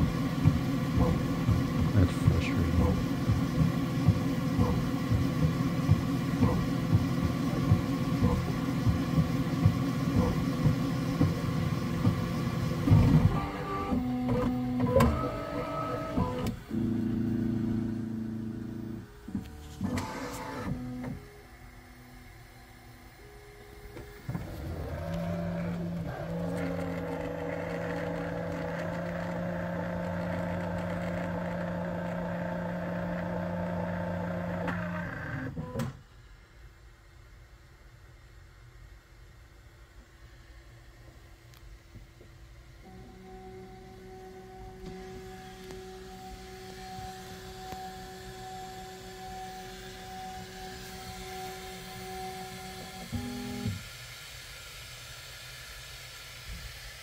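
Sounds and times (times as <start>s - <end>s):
printer stepper motors ticking: 0.0s - 21.4s, 23.9s - 35.9s, 42.8s - 53.8s
printer motor hum: 0.0s - 36.0s, 42.7s - 53.9s.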